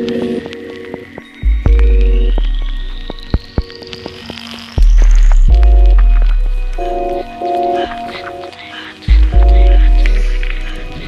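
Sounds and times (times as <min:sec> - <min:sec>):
scattered clicks: 0:00.0 - 0:11.0
deep bass notes: 0:01.5 - 0:03.4, 0:04.8 - 0:07.4, 0:09.1 - 0:11.0.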